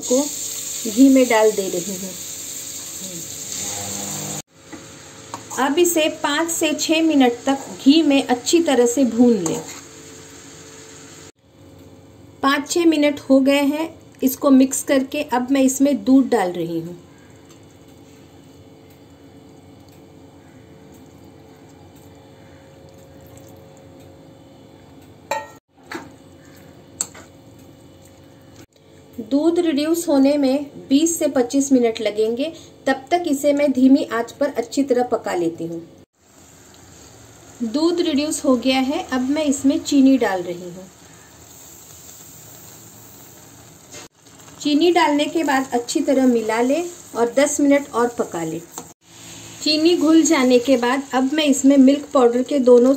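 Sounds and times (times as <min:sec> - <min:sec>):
food sizzling in a pan: 0:00.0 - 0:11.4, 0:36.1 - 0:52.9
metal spoon knocking on pan: 0:25.3 - 0:26.1.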